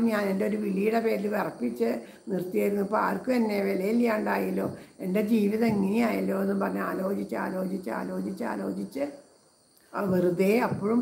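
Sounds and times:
woman singing unaccompanied: 2.3 - 9.1, 10.0 - 11.0.

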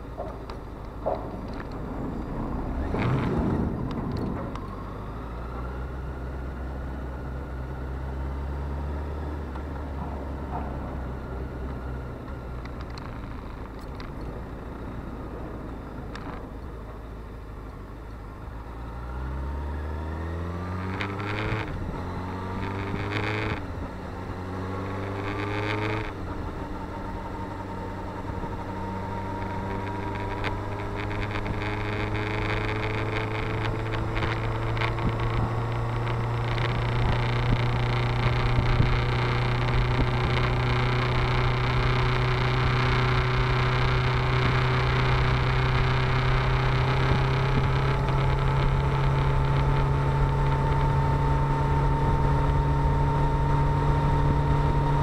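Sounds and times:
motorcycle engine shifting gears: 0.0 - 55.0
wind noise on microphone: 33.1 - 41.6.

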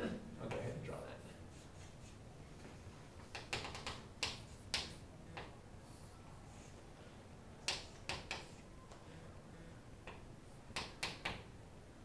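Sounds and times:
chalk tapping on chalkboard: 3.2 - 5.5, 7.7 - 8.6.

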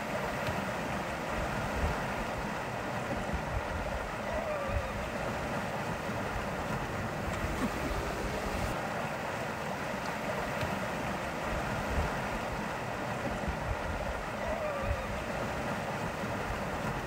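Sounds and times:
rushing water: 0.0 - 17.0
wind buffeting microphone: 1.2 - 8.8, 11.4 - 17.0.

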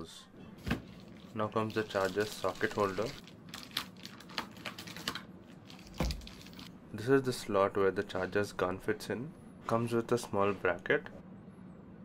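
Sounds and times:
plastic bag crinkling: 0.9 - 6.7.

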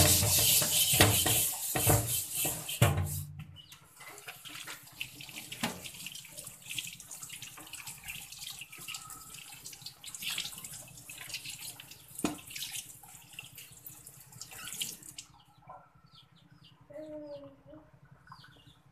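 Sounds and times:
wire scourer scrubbing metal wok: 0.0 - 3.3
tap water splashing: 0.0 - 15.3.

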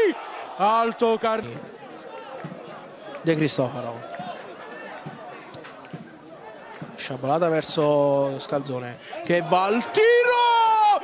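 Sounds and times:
faint voices calling and shouting: 0.0 - 11.0.

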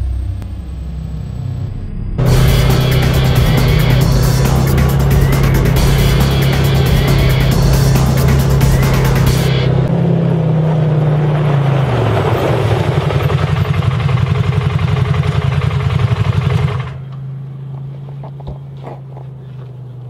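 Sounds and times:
off-road vehicle engine running: 0.0 - 20.0
background music with a beat: 2.2 - 9.9.

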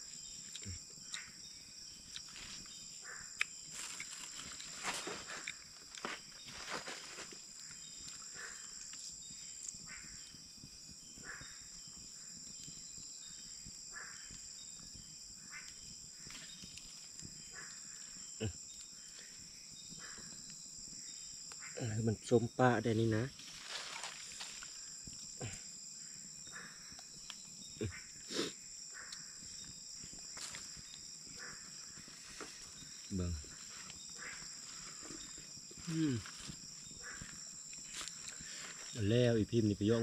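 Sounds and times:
crickets chirping: 0.0 - 40.0.

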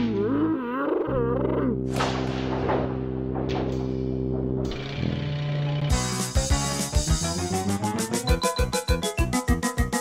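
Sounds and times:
background music: 0.0 - 10.0
sudden noisy hit: 1.9 - 5.0.

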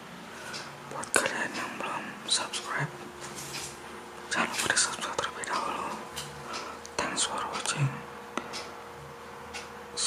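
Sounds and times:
person whispering: 0.9 - 3.0, 4.3 - 6.1, 7.0 - 8.1.

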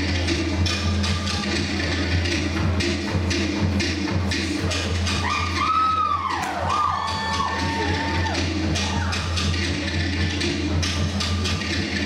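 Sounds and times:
gliding whoops: 5.2 - 9.3.

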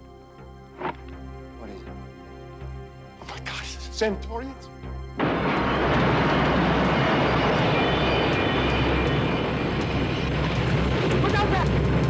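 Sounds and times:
fire roaring: 5.2 - 12.0.

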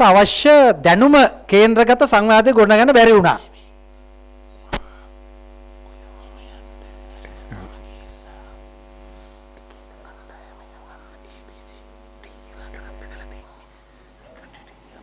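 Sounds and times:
electrical mains hum: 0.0 - 15.0
sharp click: 4.7 - 4.9
faint whispered speech: 5.9 - 8.7, 9.4 - 15.0.

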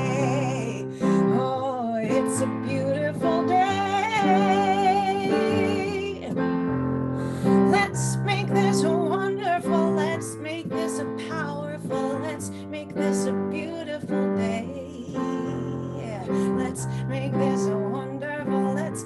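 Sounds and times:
woman singing with vibrato: 0.0 - 6.4, 7.5 - 19.0.

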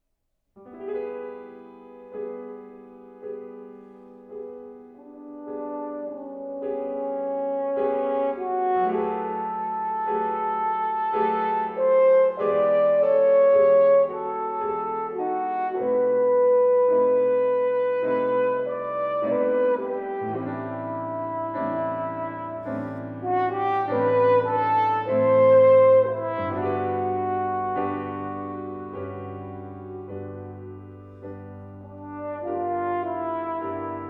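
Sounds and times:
piano accompaniment: 0.6 - 34.0
french horn melody: 3.9 - 34.0.

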